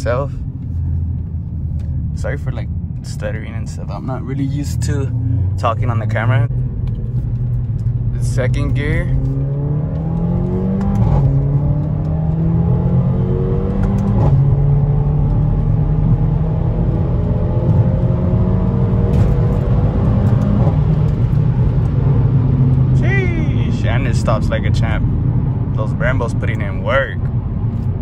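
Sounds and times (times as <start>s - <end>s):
car engine accelerating hard: 0.0s - 28.0s.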